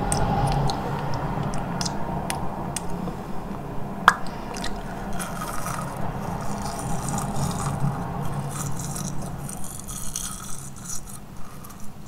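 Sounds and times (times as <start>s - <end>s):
bristles scraping against teeth: 4.5s - 12.0s.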